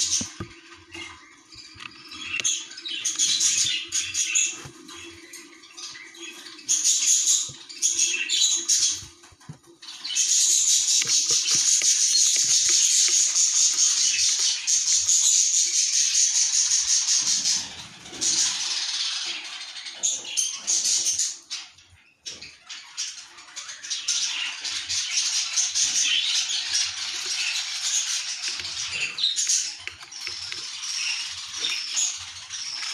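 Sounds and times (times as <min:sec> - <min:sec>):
budgerigar chick chattering: 0:00.0 - 0:09.1, 0:09.9 - 0:19.4, 0:24.8 - 0:32.9.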